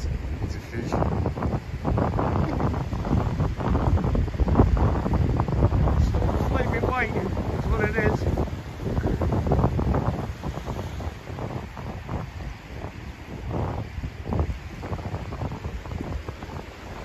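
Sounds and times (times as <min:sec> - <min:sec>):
surf washing on beach: 0:00.0 - 0:17.0
wind buffeting microphone: 0:00.0 - 0:17.0.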